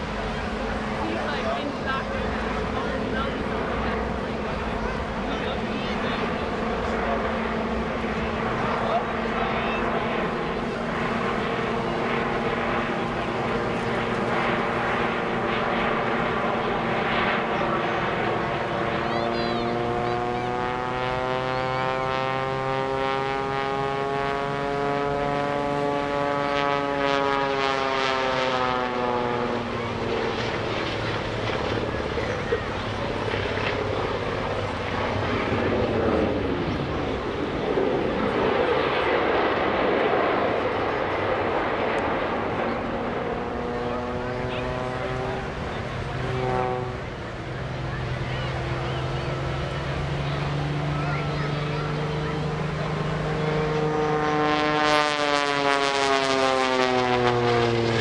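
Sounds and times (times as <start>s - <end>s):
biplane engine and propeller drone: 0.0s - 58.0s.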